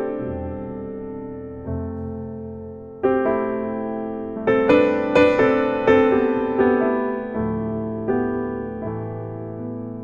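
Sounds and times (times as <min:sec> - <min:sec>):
piano chords and notes: 0:00.0 - 0:10.0.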